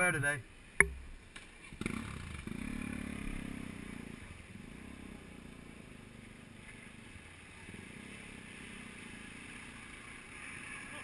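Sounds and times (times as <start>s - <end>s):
motorcycle engine revving: 0.9s - 11.0s.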